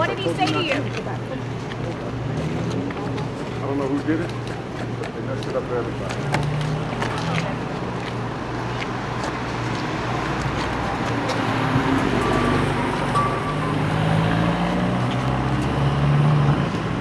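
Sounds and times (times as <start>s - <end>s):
street traffic noise: 0.0s - 17.0s.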